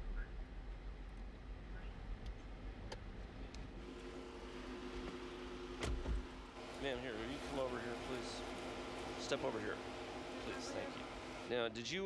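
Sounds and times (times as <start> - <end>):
steady hum: 0.0 - 11.7.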